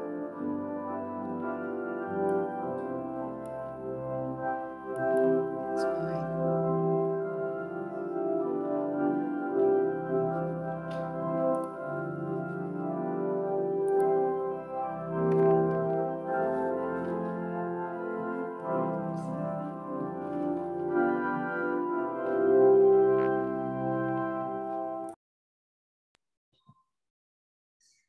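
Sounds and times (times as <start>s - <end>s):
organ playing sustained chords: 0.0s - 25.2s.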